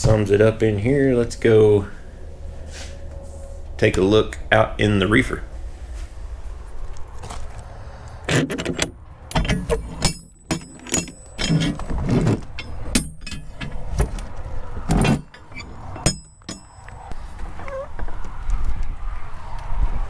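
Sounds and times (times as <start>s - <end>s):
metal door lock handles clanking: 8.3s - 16.9s.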